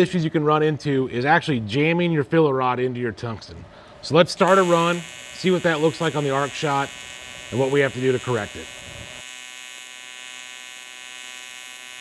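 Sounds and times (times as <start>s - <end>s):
welding arc buzzing: 4.4s - 12.0s.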